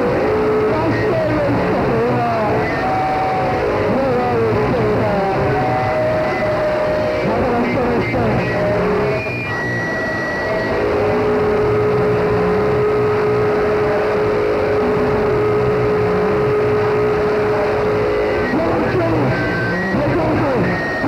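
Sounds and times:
pulsing low drone: 0:00.0 - 0:21.0
steady held tone: 0:00.0 - 0:21.0
wall of distorted noise: 0:00.0 - 0:21.0.

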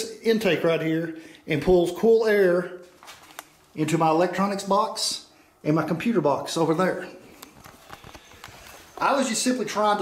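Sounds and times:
camera handling noise: 0:07.4 - 0:08.9
footsteps on floor: 0:07.4 - 0:09.1.

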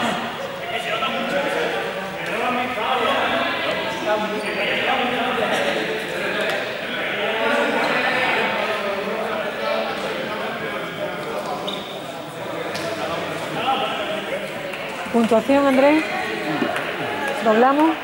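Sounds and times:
many young people talking: 0:00.0 - 0:18.0.

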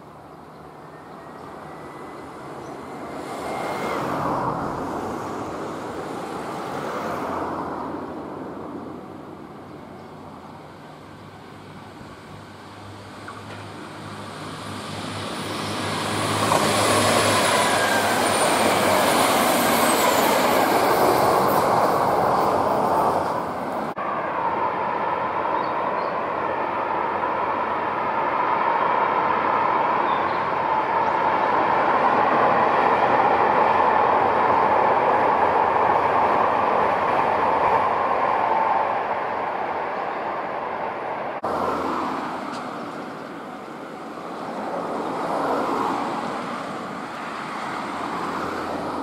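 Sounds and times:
diesel train passing: 0:00.0 - 0:49.0.

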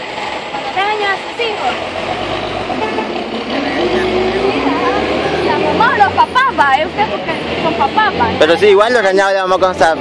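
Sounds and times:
vehicle engine drone: 0:00.0 - 0:10.0
people talking: 0:03.5 - 0:10.0.

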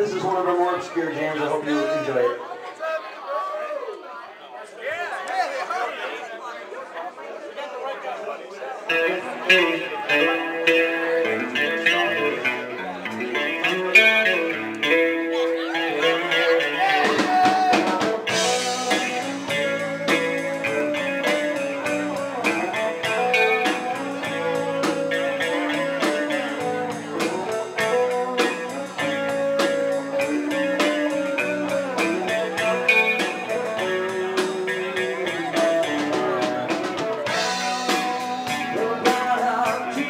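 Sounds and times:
bass guitar: 0:00.0 - 0:01.6, 0:08.9 - 0:40.0
electric guitars: 0:08.9 - 0:40.0
drum kit beat: 0:13.0 - 0:40.0.

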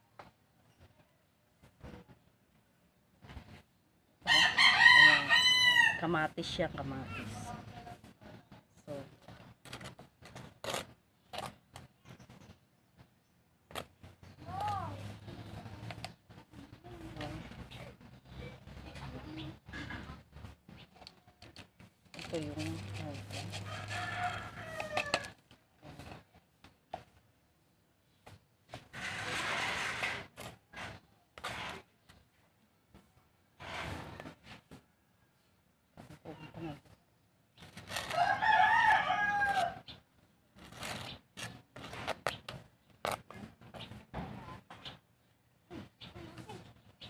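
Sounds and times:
rooster crowing: 0:04.3 - 0:06.1, 0:23.6 - 0:25.3, 0:38.1 - 0:39.8
metal spoon scraping soil in tin: 0:21.1 - 0:25.3, 0:28.8 - 0:31.8.

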